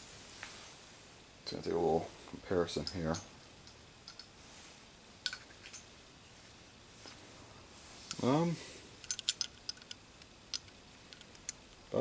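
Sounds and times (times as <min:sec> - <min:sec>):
metal spinning tops clinking: 0:09.0 - 0:12.0.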